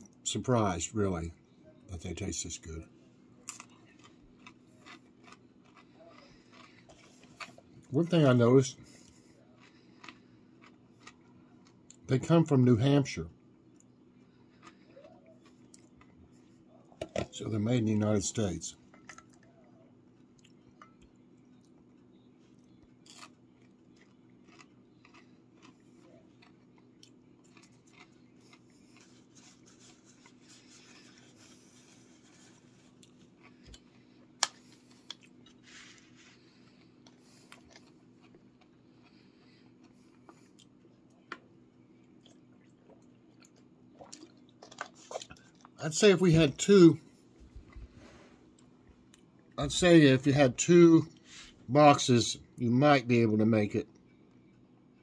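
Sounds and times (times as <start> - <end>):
low room hum: 0.0 - 55.0
chewing crunchy food: 3.4 - 12.1, 13.4 - 17.0, 18.8 - 45.8.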